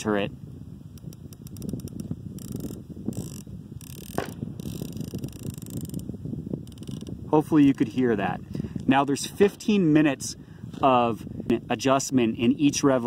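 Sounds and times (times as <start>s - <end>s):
wind noise on microphone: 0.0s - 13.0s
riflescope turret clicks: 0.9s - 7.9s.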